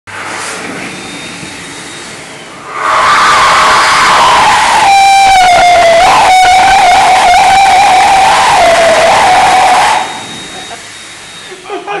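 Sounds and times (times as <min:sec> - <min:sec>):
high whistling tone: 0:01.0 - 0:11.7
electric hand dryer running: 0:05.7 - 0:11.0.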